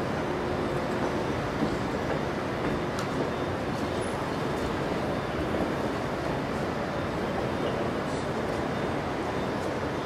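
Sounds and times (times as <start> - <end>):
busy indoor atrium rumble: 0.0 - 10.0.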